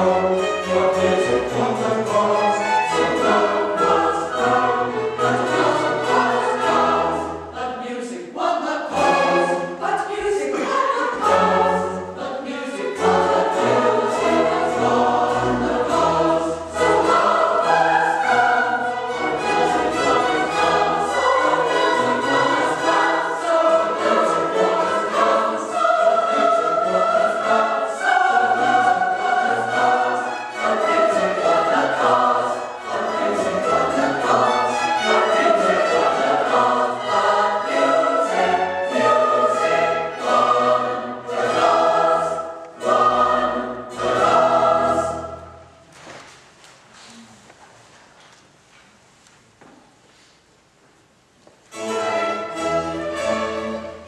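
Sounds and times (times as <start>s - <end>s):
mixed choir singing: 0.0s - 45.8s, 51.8s - 54.0s
string orchestra: 0.0s - 45.9s, 51.6s - 54.0s.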